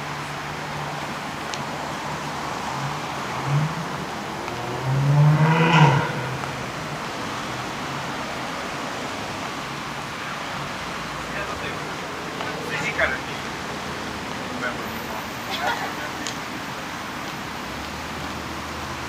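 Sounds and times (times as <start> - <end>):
traffic engine hum: 0.0 - 19.0
vehicle engine revving: 2.0 - 8.2.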